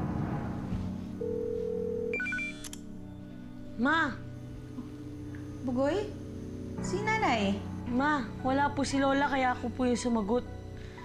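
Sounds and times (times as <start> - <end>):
steady telephone tone: 1.2 - 2.7
short higher beeps: 2.1 - 2.7.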